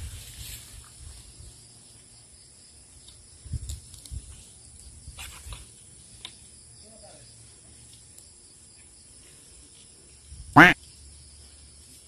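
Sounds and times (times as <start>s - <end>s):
short loud call: 10.6s - 10.8s.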